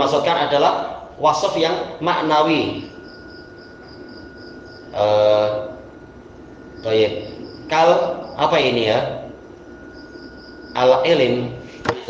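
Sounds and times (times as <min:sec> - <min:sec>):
cricket chirping: 0:00.0 - 0:12.0
faint steady high tone: 0:00.0 - 0:12.0.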